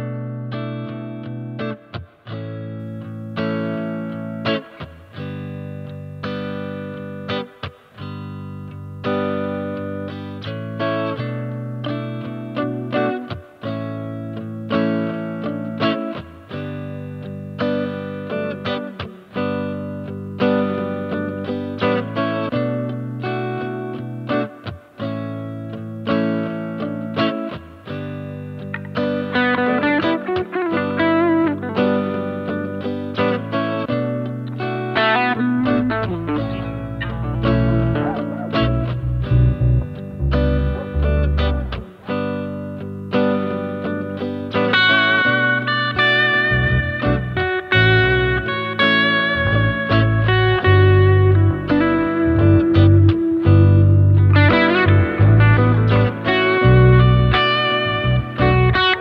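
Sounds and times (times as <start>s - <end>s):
overdriven electric guitar chords: 0.0s - 59.0s.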